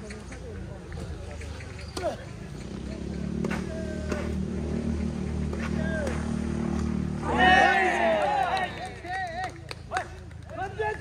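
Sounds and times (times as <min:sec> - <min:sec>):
low vehicle engine hum: 0:00.0 - 0:11.0
tennis racket hitting ball: 0:03.4 - 0:04.4, 0:05.3 - 0:07.0.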